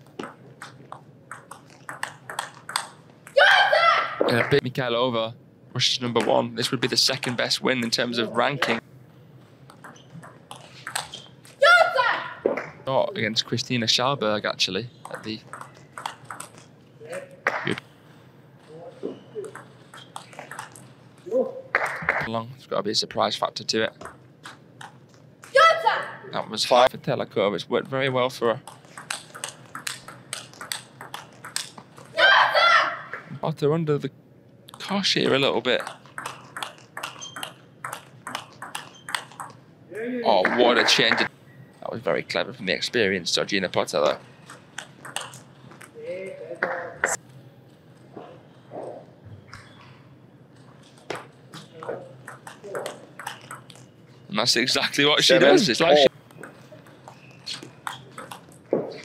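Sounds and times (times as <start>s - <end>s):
table tennis ball clicking: 0.2s - 3.4s, 9.7s - 11.2s, 15.0s - 16.7s, 19.4s - 20.9s, 28.6s - 32.2s, 34.7s - 39.6s, 44.4s - 46.0s, 51.1s - 53.9s, 56.2s - 58.6s
loud high-pitched shout: 3.4s - 4.2s, 11.6s - 12.4s, 25.6s - 26.1s, 32.2s - 33.1s.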